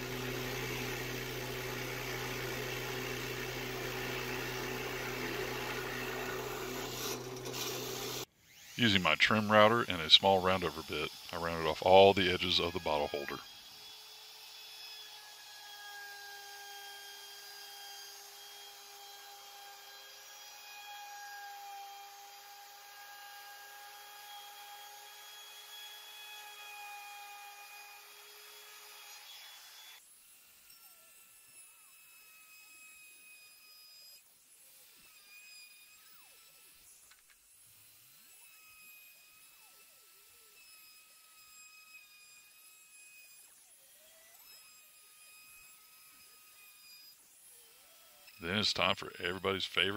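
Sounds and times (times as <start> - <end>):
trim router high whine: 0.0 - 30.0.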